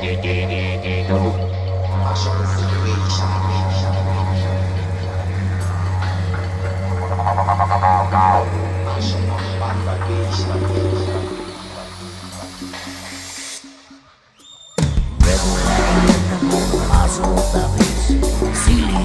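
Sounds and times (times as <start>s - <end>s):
band music: 0.0s - 13.6s, 14.8s - 19.0s
didgeridoo drone: 0.0s - 14.2s, 15.2s - 19.0s.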